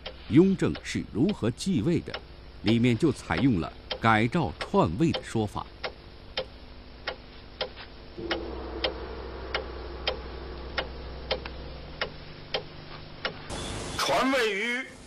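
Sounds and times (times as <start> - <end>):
dramatic clock-like ticking: 0.0 - 13.5
low sustained drone: 8.2 - 14.0.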